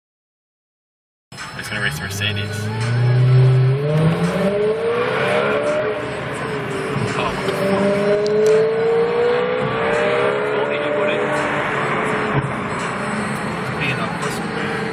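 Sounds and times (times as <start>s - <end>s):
car engine accelerating hard: 1.6s - 14.9s.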